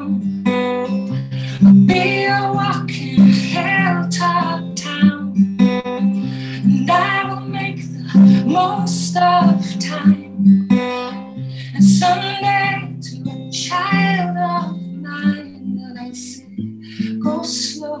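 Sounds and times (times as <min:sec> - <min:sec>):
strummed acoustic guitar: 0:00.0 - 0:18.0
woman singing: 0:00.0 - 0:18.0.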